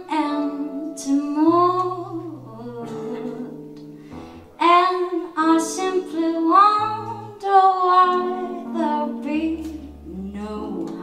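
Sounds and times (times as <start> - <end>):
woman singing into a microphone: 0.0 - 3.8, 4.6 - 11.0
quiet instrumental accompaniment: 0.0 - 11.0.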